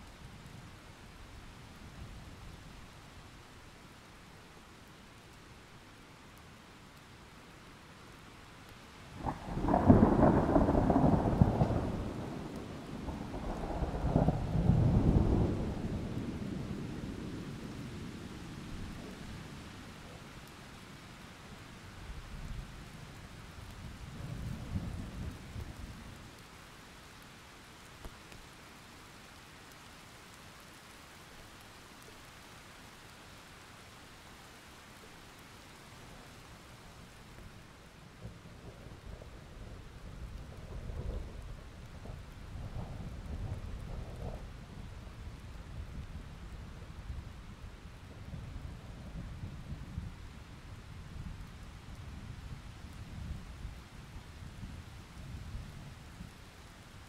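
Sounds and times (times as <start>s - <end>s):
steady rain hiss: 0.0s - 57.0s
thunder rumbling: 9.2s - 19.6s, 38.2s - 46.6s.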